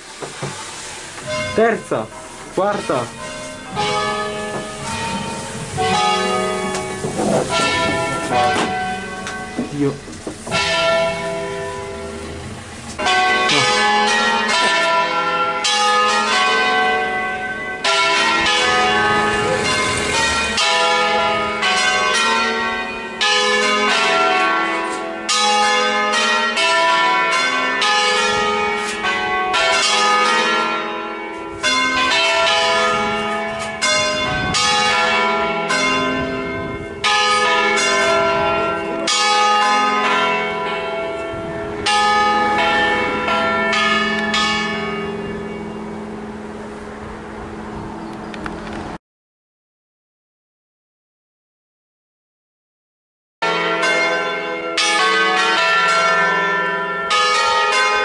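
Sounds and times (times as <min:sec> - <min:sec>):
church bells ringing: 0:00.6 - 0:48.2, 0:53.4 - 0:58.0.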